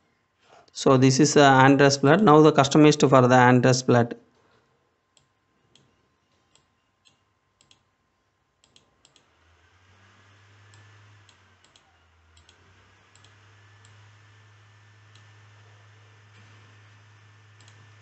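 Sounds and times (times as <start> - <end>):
computer mouse clicks: 5.1 - 7.9, 8.6 - 9.3, 10.7 - 14.0, 17.6 - 17.8.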